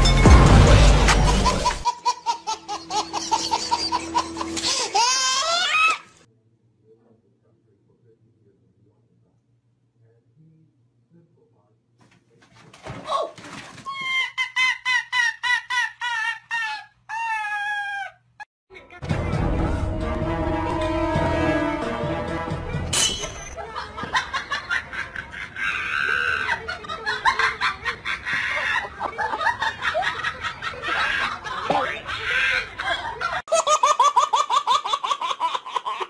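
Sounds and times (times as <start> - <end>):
people snickering and chuckling: 0.8 - 5.2, 13.9 - 18.1, 23.6 - 36.0
speech: 6.3 - 13.4, 31.5 - 32.7.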